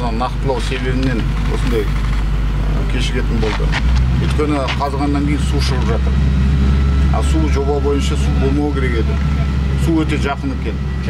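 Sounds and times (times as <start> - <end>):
men talking: 0.0 - 11.0
steady low rumble: 0.0 - 11.0.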